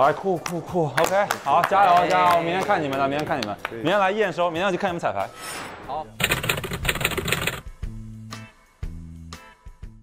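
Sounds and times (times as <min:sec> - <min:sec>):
rapid typewriter clicking: 0:06.2 - 0:07.7.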